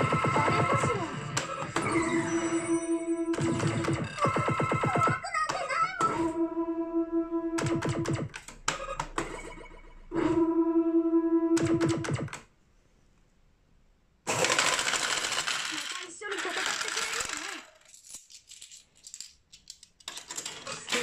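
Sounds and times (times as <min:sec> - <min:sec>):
held electronic tone: 0:06.1 - 0:12.3
metal medals clattering into tray: 0:15.3 - 0:21.0.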